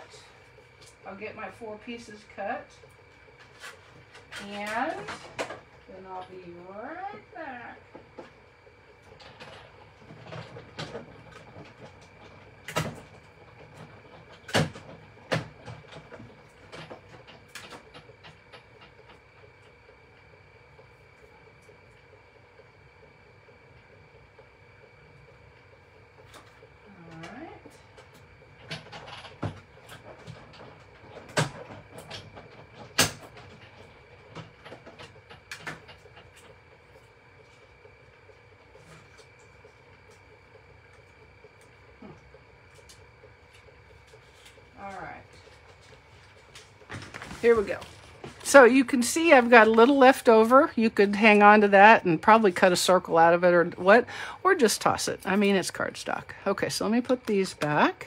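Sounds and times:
faint steady hum: 0.0s - 58.0s.

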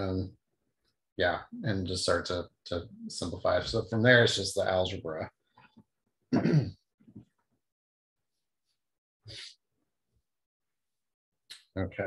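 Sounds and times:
man clearing his throat: 6.3s - 6.8s.

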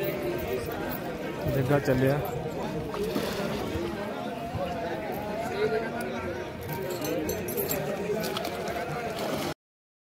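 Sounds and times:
people talking and calling out: 0.0s - 9.5s.

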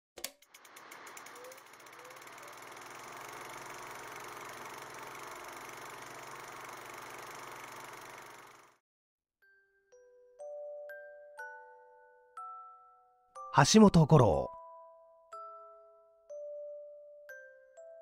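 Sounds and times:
film projector clicking and whirring: 0.2s - 8.8s.

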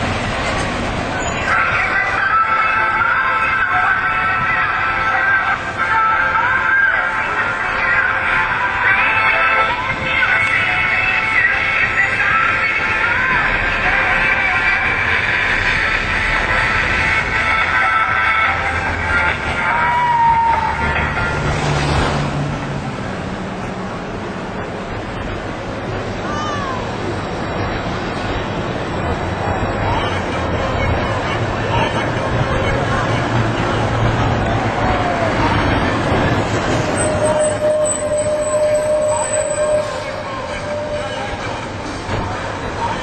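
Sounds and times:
outdoor street ambience: 0.0s - 43.0s
van passing: 0.0s - 43.0s
voices: 0.5s - 22.3s, 23.0s - 43.0s
steady squeal: 36.3s - 41.9s.

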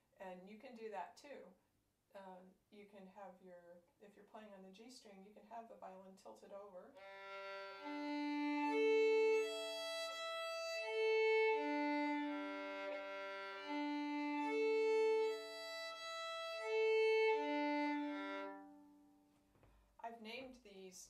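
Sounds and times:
violin bowed slowly: 7.0s - 19.2s.

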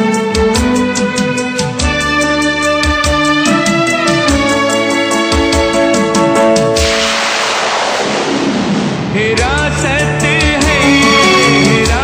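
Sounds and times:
loud hissing whoosh: 6.8s - 9.3s
person singing: 9.1s - 12.0s.

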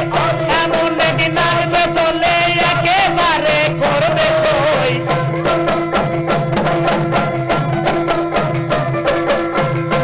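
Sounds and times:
man singing folk song: 0.0s - 5.1s
small hand drum: 0.0s - 10.0s.

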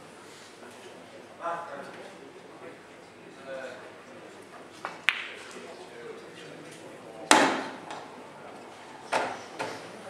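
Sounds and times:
pool ball knocking in ball return: 7.3s - 8.1s.

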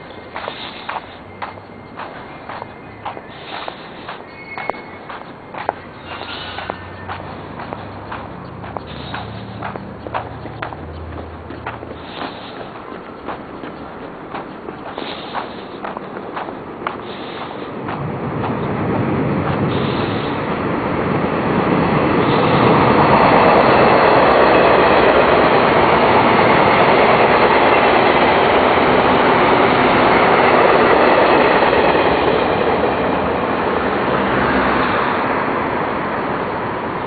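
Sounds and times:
train passing: 0.0s - 37.0s.

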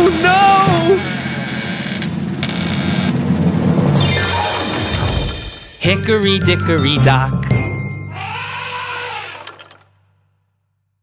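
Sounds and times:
low buzzing tone: 0.5s - 5.5s
gliding cartoon sound effects: 3.8s - 9.8s.

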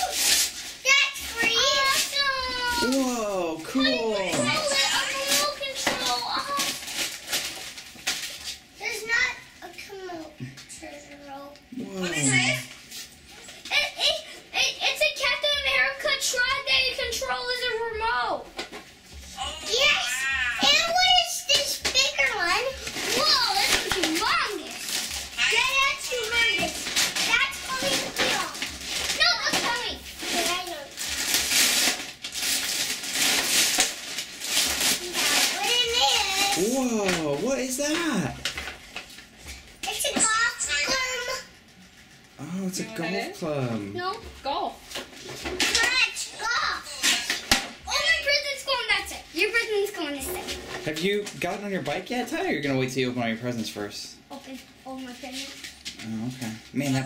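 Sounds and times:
wrapping paper tearing: 0.0s - 9.0s, 19.6s - 42.7s
young children's voices: 0.8s - 6.7s, 13.7s - 18.4s, 19.4s - 31.0s, 35.0s - 37.5s, 39.8s - 41.5s, 45.7s - 47.1s, 47.8s - 50.5s
children calling out: 1.2s - 6.6s, 19.4s - 22.3s.

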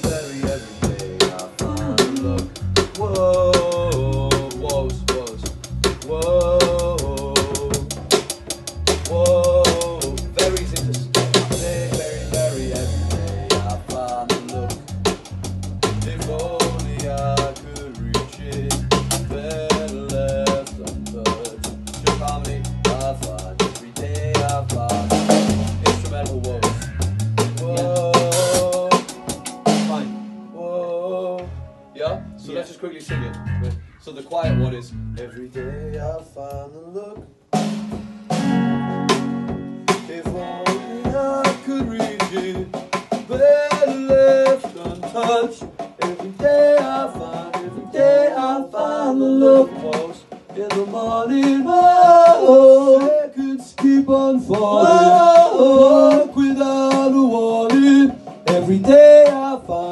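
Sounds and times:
bass notes: 0.0s - 28.9s, 31.4s - 36.6s
drum kit: 0.0s - 30.4s, 31.3s - 59.9s.

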